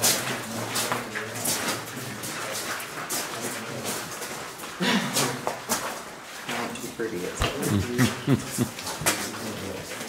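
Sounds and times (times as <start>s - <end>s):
footsteps on rough floor: 7.4s - 9.4s.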